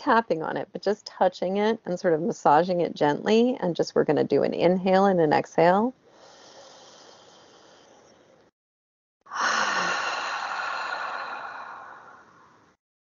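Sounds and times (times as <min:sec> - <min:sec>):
woman breathing deeply: 0:06.1 - 0:08.2, 0:09.3 - 0:12.8.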